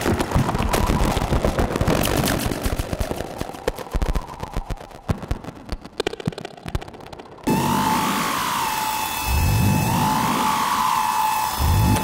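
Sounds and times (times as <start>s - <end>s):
electronic clicks and crackles: 2.0s - 7.5s.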